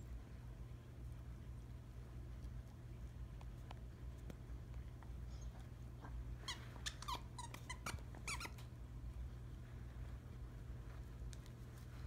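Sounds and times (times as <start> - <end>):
dog chewing toy: 2.2 - 8.7
dog toy squeaking: 6.5 - 8.7.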